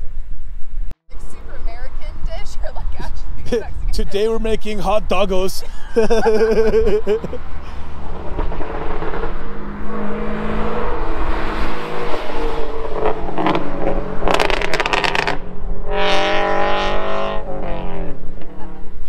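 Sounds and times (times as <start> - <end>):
cars accelerating past: 1.3 - 19.0.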